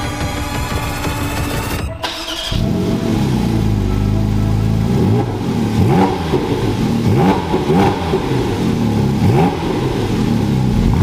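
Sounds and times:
background music: 0.0s - 10.7s
car engine revving: 0.0s - 11.0s.

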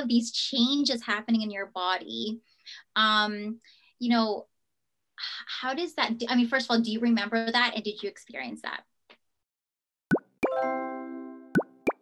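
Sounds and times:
bright ringing chord: 10.4s - 11.8s
cartoon rising pop: 11.5s - 12.0s.

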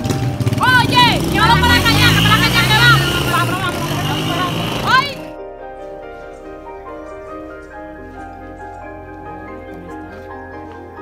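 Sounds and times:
woman calling loudly: 0.6s - 5.3s
woman talking: 0.6s - 5.3s.

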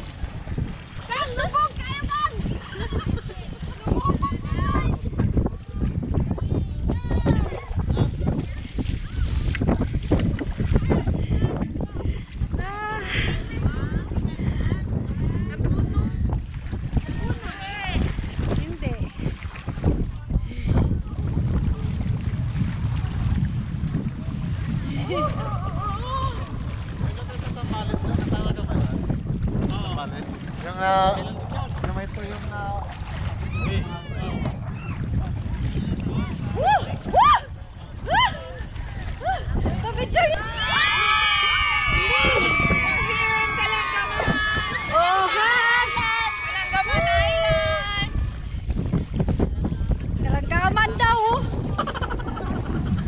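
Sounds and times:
water splashing around wading legs: 0.0s - 11.2s, 16.3s - 20.3s, 20.9s - 49.4s
wind rumble on microphone: 0.0s - 53.0s
people calling out: 40.4s - 48.1s, 51.6s - 52.8s.

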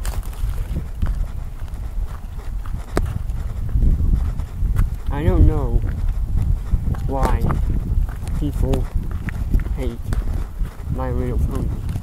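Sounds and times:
wind and handling noise: 0.0s - 12.0s.

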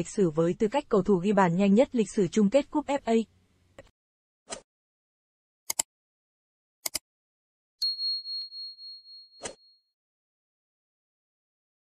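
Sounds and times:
high bell ding: 7.8s - 9.6s.

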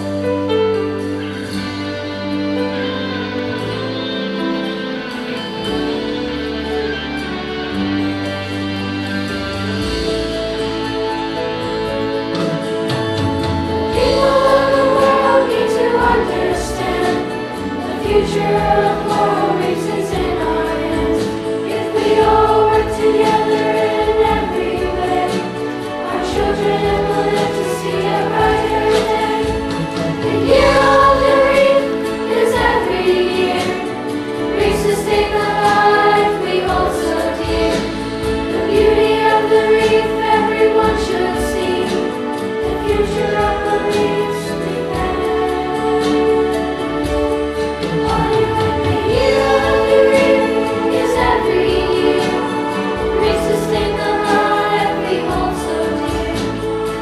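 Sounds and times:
children's choir singing: 0.0s - 57.0s.

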